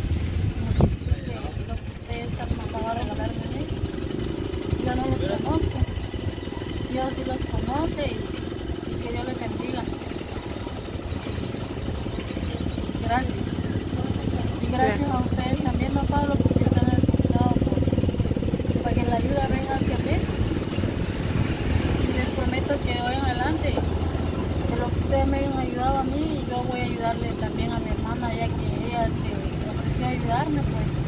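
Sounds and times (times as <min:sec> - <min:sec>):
vehicle engine running: 0:00.0 - 0:31.0
quiet voices: 0:00.5 - 0:31.0.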